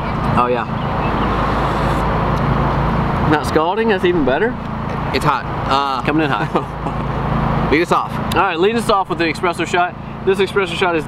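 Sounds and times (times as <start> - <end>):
vehicle engine running: 0.0 - 11.0.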